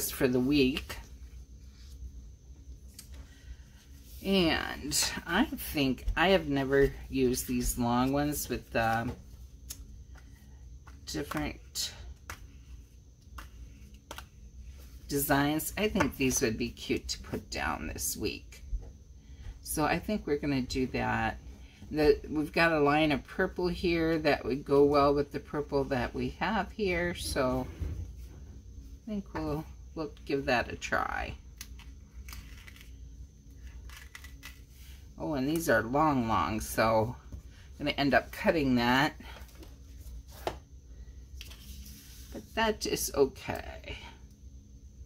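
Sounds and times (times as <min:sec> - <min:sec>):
low room hum: 0:00.0 - 0:45.0
book pages turning: 0:13.3 - 0:15.0, 0:33.6 - 0:34.8, 0:39.4 - 0:40.6, 0:41.4 - 0:42.5.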